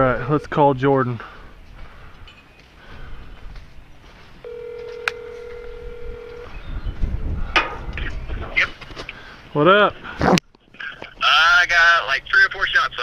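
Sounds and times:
phone ringback tone: 4.4s - 6.6s.

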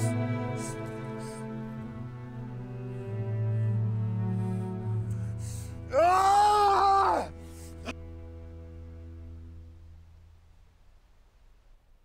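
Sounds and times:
bowed string music: 0.0s - 11.0s
person wailing: 5.9s - 7.4s.

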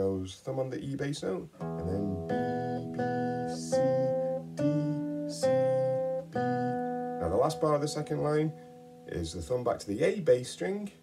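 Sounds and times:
classical guitar plucked notes: 1.5s - 9.2s.

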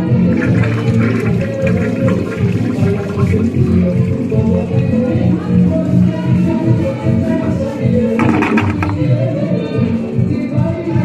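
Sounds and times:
toilet flushing: 0.0s - 4.8s, 8.2s - 9.1s.

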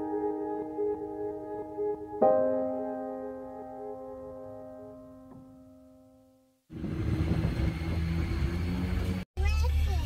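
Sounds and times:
soft background music: 0.0s - 6.4s
vehicle engine rumble: 6.7s - 10.0s.

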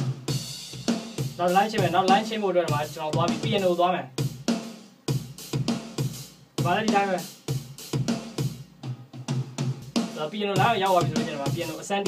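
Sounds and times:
programmed drum beat: 0.0s - 12.0s
person speaking: 1.4s - 4.1s, 6.6s - 7.3s, 10.2s - 12.0s.

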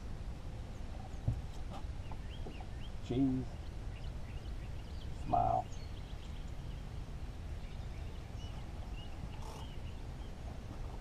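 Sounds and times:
faint bird chirps: 7.5s - 10.4s.

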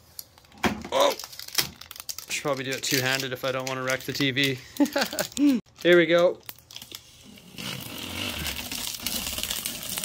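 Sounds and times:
plastic film peeling: 0.2s - 10.0s.

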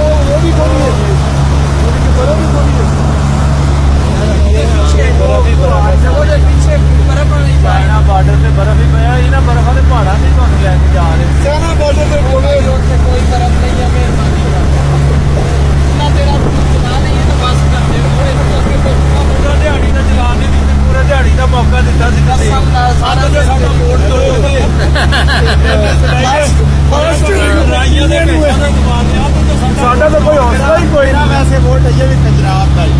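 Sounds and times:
motorboat engine droning: 0.0s - 32.9s
people chattering: 0.0s - 32.9s
voices talking: 0.0s - 32.9s.

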